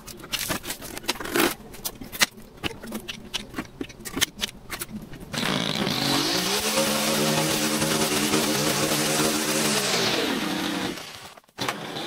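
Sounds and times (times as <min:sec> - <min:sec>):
string trimmer engine: 0:05.4 - 0:12.0.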